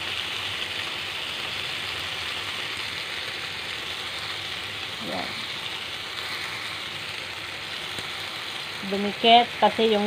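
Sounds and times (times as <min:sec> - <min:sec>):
food sizzling in oil: 0:00.0 - 0:10.0.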